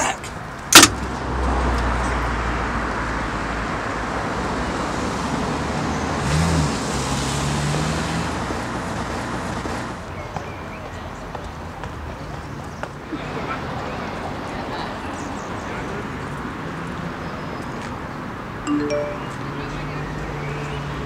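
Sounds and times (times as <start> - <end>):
passing cars: 0.6 - 18.6.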